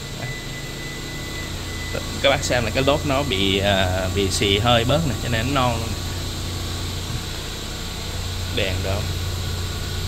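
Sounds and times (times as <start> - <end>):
high-pitched whine: 0.0 - 10.0
machine hum: 0.0 - 10.0.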